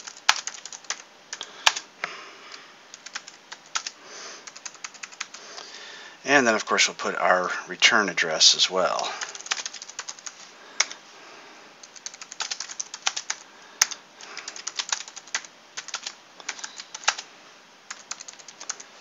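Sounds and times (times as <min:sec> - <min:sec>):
keyboard typing: 0:00.0 - 0:01.8, 0:02.9 - 0:05.4, 0:09.2 - 0:11.0, 0:11.8 - 0:17.2, 0:17.9 - 0:18.9.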